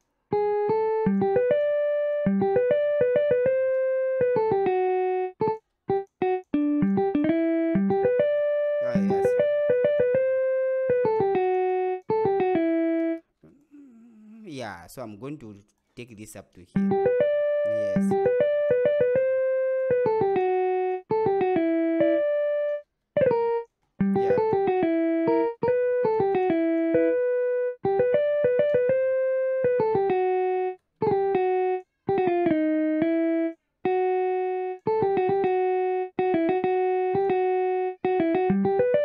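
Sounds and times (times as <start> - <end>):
keyboard-like melodic pattern: 0.3 - 13.2, 16.8 - 39.0.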